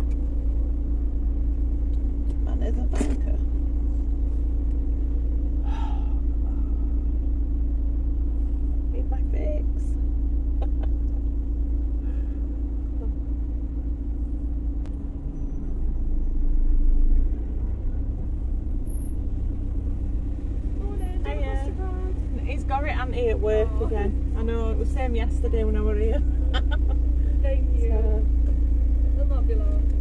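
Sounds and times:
car engine rumble: 0.0 - 30.0.

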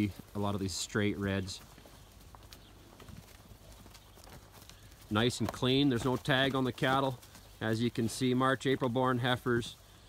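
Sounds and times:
hoof steps on straw: 0.0 - 10.0.

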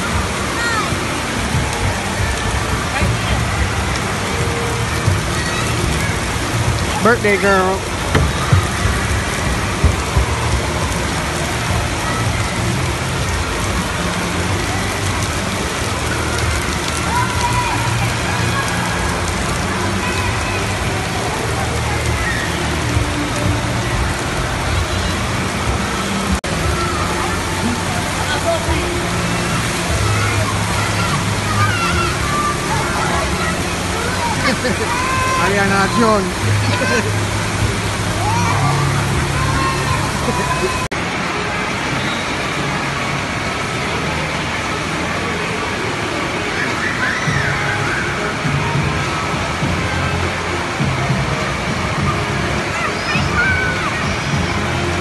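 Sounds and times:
falling and splashing water: 0.0 - 55.0.

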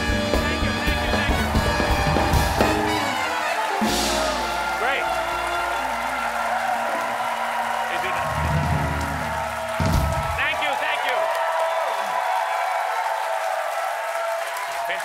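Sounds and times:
band playing swing music: 0.0 - 10.5.

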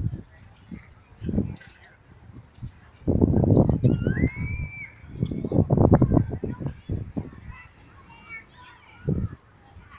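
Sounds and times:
high squeal: 3.9 - 5.0.

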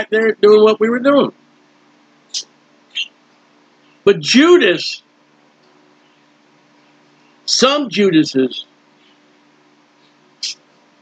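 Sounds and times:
man talking: 0.0 - 1.3, 4.0 - 5.0, 7.5 - 8.7
faint room hum: 0.0 - 11.0.

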